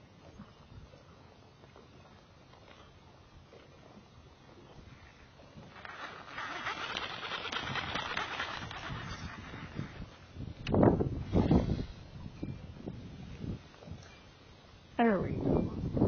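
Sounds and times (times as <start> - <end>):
fishing reel ticking whir: 5.7 - 10.2
lure cast falling in pitch: 5.8 - 9.8.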